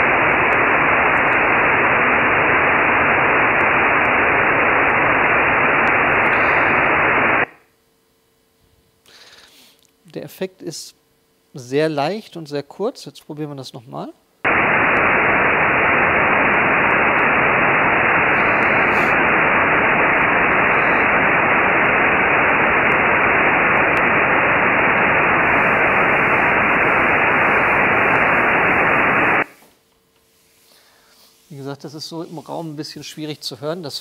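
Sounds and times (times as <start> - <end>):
loud even noise hiss: 0.0 - 7.6, 14.5 - 29.8.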